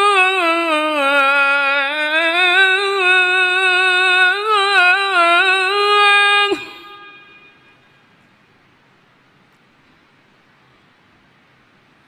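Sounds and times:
person singing call to prayer: 0.0s - 7.6s.

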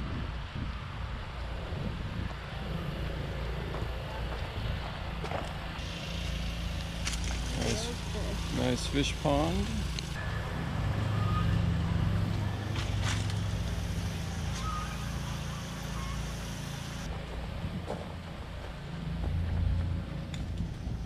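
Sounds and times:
low motor hum: 0.0s - 21.0s.

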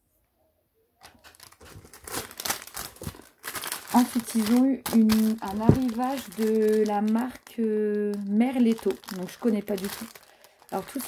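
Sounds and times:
plastic packaging crinkling: 1.0s - 11.0s.

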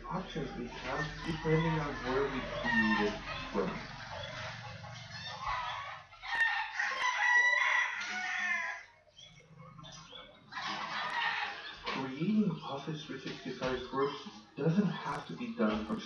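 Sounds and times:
long animal calls: 0.0s - 7.2s.

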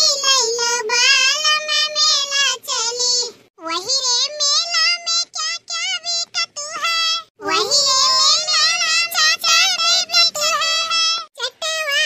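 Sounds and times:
high cartoon voice singing: 0.0s - 12.0s.

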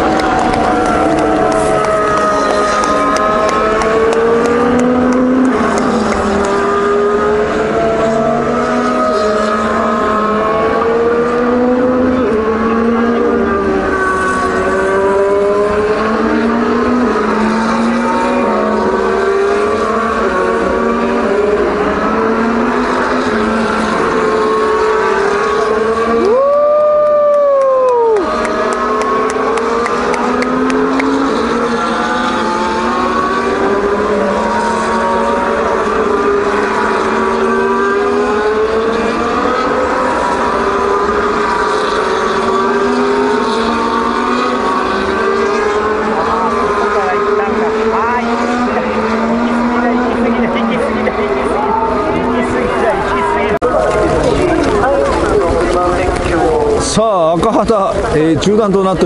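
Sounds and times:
racing car engines revving: 0.0s - 59.0s.

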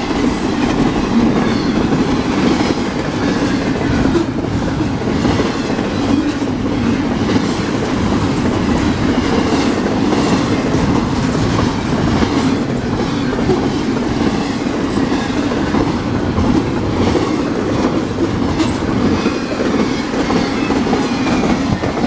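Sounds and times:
wheels clacking over rail joints: 0.0s - 22.0s.

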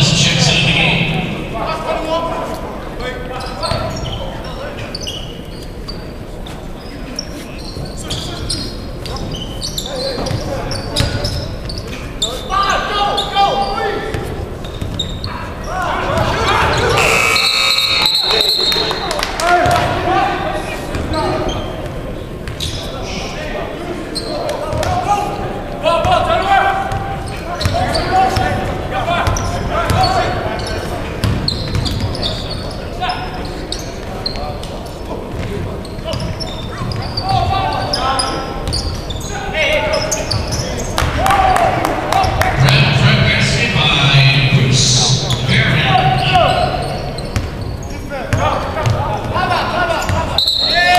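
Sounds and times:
voices echoing in a hall: 0.0s - 50.9s
brief high tone: 17.0s - 19.0s.

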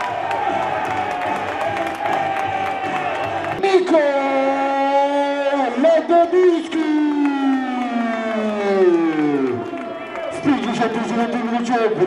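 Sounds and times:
man commentating excitedly: 3.6s - 9.6s, 10.3s - 12.0s.

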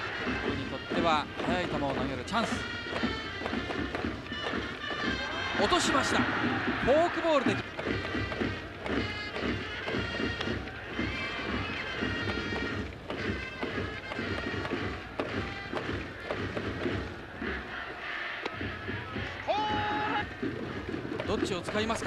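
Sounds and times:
brass melody: 0.0s - 6.7s, 8.0s - 16.3s
steady drum beat: 0.0s - 22.0s.

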